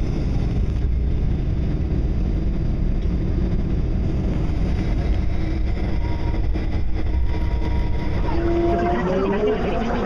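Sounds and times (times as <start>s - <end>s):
electric train rumbling: 0.0s - 10.0s
whining motor tones rising: 5.5s - 10.0s.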